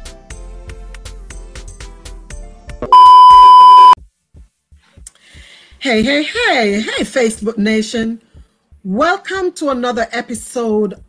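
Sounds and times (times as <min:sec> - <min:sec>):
loud high steady beep: 0:02.9 - 0:04.0.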